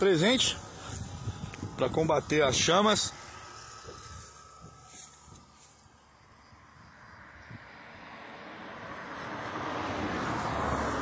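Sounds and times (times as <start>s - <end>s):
vehicle passing: 0.0s - 11.0s.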